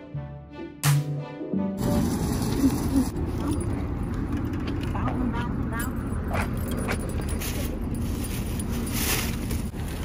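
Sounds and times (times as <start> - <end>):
shopping cart rolling on asphalt: 1.8 - 10.0
keys jangling: 5.7 - 9.5.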